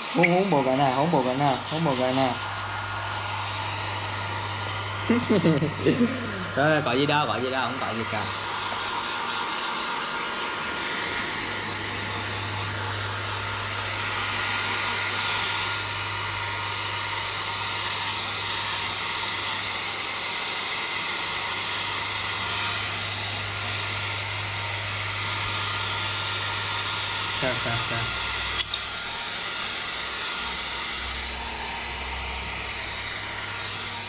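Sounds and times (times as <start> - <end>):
hair dryer running: 0.0 - 34.0.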